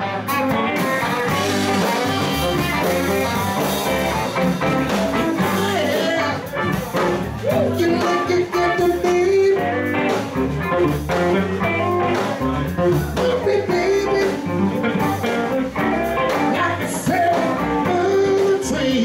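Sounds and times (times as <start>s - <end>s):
bass: 0.0s - 19.0s
drums: 0.0s - 19.0s
electric guitar: 0.0s - 19.0s.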